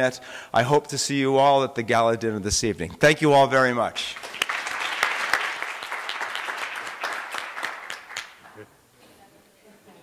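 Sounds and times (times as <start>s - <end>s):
audience applause: 4.1s - 8.6s.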